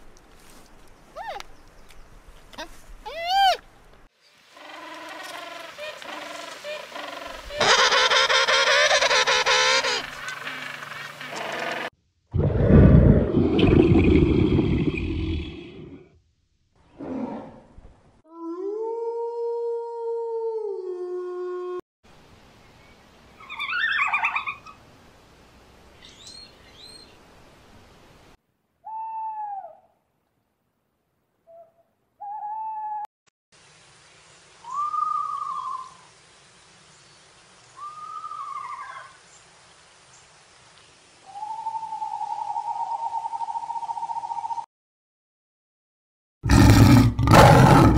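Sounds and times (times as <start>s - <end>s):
short arching animal calls: 4.6s - 11.9s
penguins calling: 5.2s - 11.9s.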